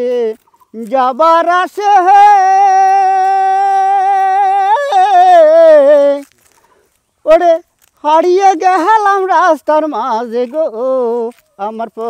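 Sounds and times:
person singing: 0:00.0 - 0:06.3, 0:07.3 - 0:12.0.

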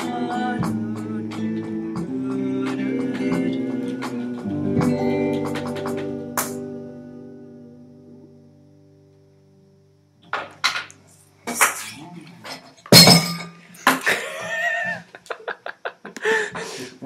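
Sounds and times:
guitar chord: 0:00.0 - 0:10.0
drum kit crashing over: 0:12.9 - 0:13.6.

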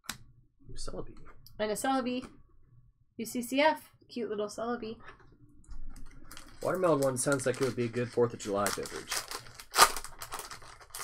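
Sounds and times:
foil wrapper crinkling and ripping: 0:06.3 - 0:11.0.

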